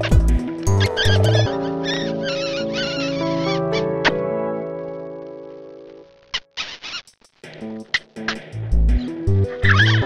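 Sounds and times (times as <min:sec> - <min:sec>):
short sharp squeak: 0:06.4 - 0:07.1.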